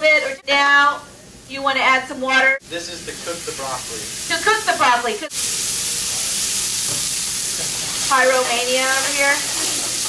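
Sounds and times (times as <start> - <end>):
water hissing in hot oil: 2.6 - 10.0.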